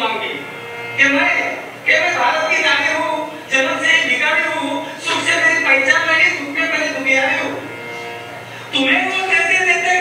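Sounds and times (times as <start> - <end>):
man speaking over sound system: 0.0 - 7.8, 8.7 - 10.0.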